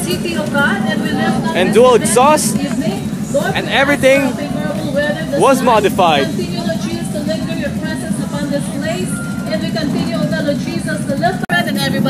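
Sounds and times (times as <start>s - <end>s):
announcer over public address: 1.4s - 2.6s, 3.4s - 6.4s.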